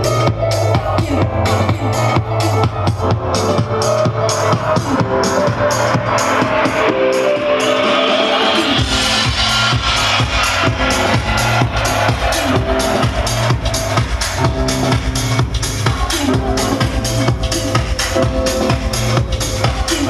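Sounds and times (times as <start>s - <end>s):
techno house music: 0.0s - 20.0s.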